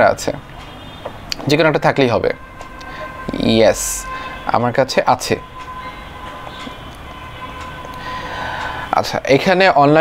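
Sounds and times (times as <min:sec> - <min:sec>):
faint whining tones: 0:00.4 - 0:09.4.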